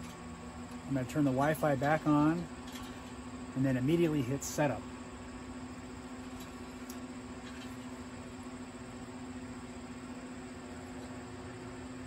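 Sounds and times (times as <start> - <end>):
grill fan humming: 0.0 - 12.0.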